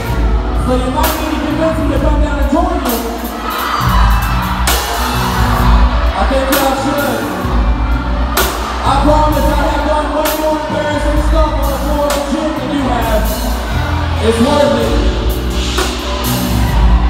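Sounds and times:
live band playing: 0:00.0 - 0:17.0.

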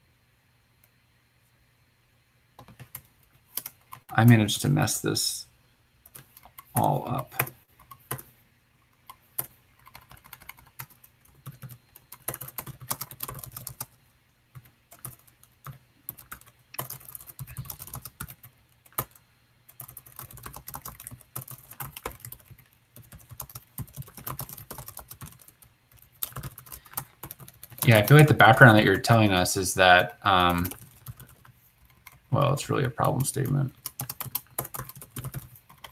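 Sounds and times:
computer keyboard typing: 0:02.6 - 0:04.2, 0:06.0 - 0:08.3, 0:09.0 - 0:29.1, 0:30.3 - 0:35.9.

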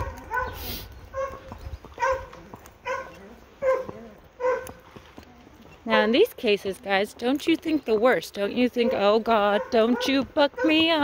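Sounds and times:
dog barking: 0:00.0 - 0:04.8, 0:08.8 - 0:11.0.

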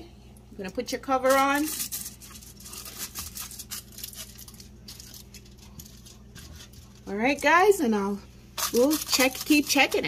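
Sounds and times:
low steady hum: 0:00.0 - 0:10.0
aluminium foil crinkling: 0:01.1 - 0:10.0.

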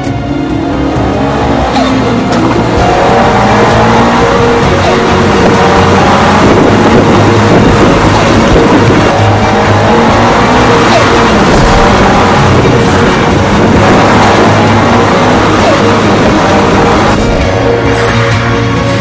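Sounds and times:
car engine accelerating: 0:00.0 - 0:19.0
music playing: 0:00.0 - 0:19.0.

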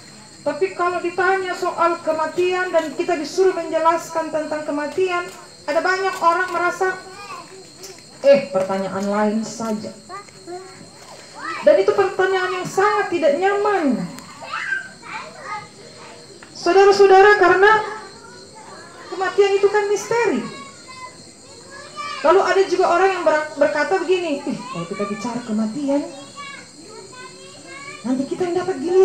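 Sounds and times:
children calling and chattering: 0:00.0 - 0:29.0.

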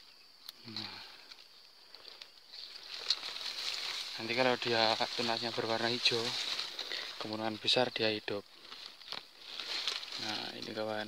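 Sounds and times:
high insect buzz: 0:00.0 - 0:11.0.

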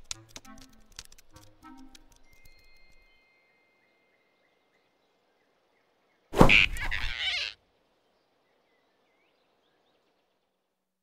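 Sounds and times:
forest ambience: 0:00.0 - 0:11.0
distant bird chirps: 0:02.2 - 0:10.6
cartoon animal squeal: 0:06.5 - 0:07.6.

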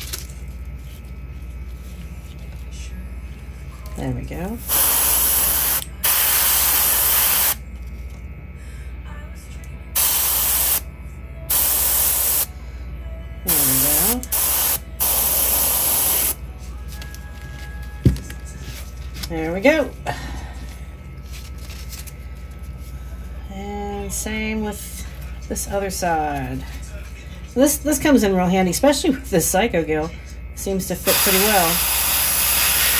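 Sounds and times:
airbrush spraying paint: 0:04.7 - 0:07.6, 0:10.0 - 0:10.8, 0:11.5 - 0:12.5, 0:13.5 - 0:16.4, 0:31.0 - 0:32.9.

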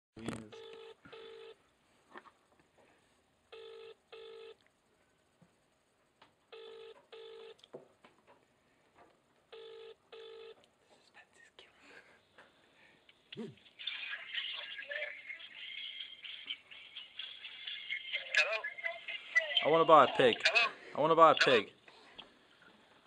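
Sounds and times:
telephone ringing tone: 0:00.6 - 0:01.6, 0:03.5 - 0:04.6, 0:06.5 - 0:07.6, 0:09.5 - 0:10.6.

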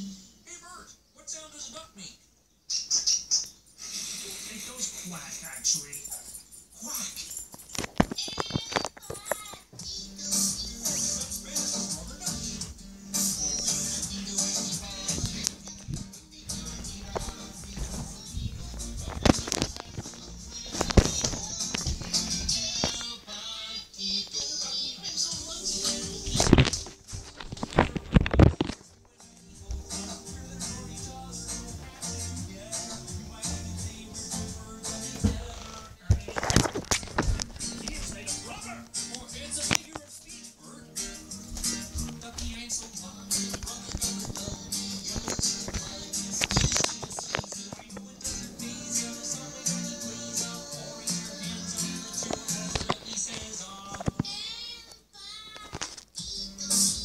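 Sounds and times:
song with bass and percussion: 0:10.6 - 0:19.4, 0:29.7 - 0:35.8.

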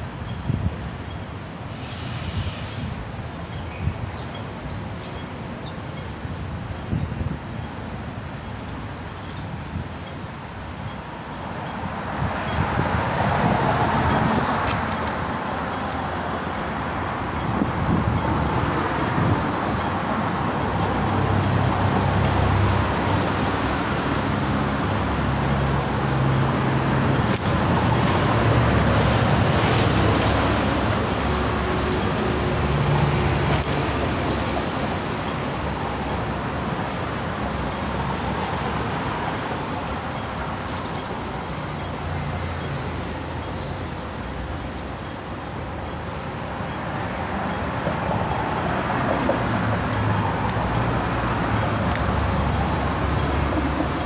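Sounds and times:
vehicle engines passing: 0:11.8 - 0:54.0.

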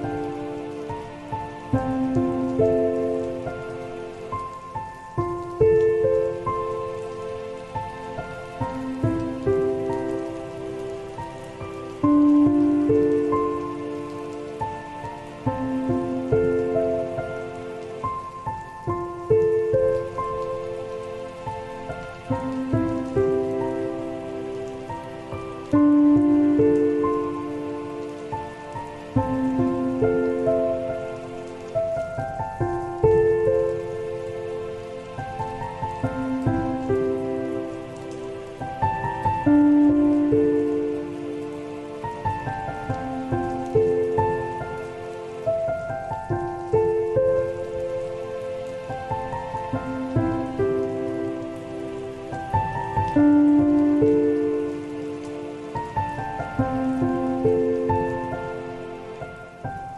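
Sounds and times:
falling rain: 0:00.0 - 0:59.9
soft solo piano: 0:00.0 - 0:59.9.

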